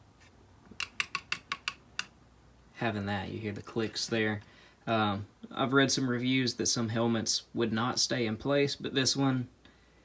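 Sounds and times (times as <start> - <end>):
plastic ratchet clicks: 0.8 - 2.1.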